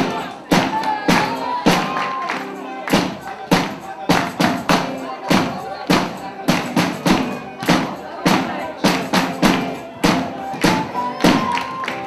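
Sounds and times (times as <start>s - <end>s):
drums beating: 0.0s - 12.0s
live band music: 0.0s - 12.0s
voices: 0.0s - 12.0s.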